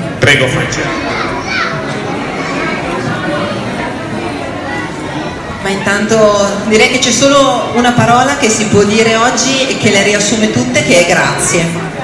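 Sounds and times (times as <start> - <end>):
chatter in echoing hall: 0.0 - 12.0.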